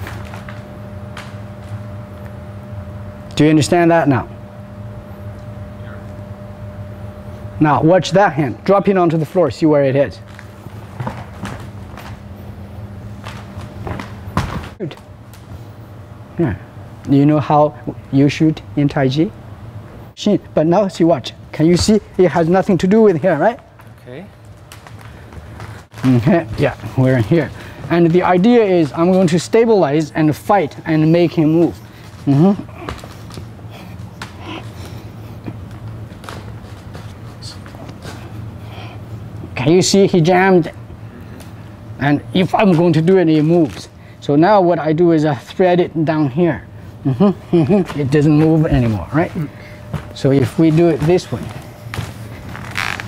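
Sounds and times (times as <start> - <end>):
steady low hum: 0.0 - 53.0
footsteps on wooden floor: 10.3 - 12.2, 47.8 - 53.0
clothing rustling: 47.8 - 53.0.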